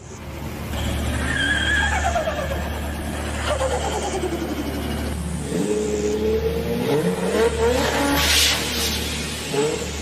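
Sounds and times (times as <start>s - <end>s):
car engine revving down: 1.9s - 10.0s.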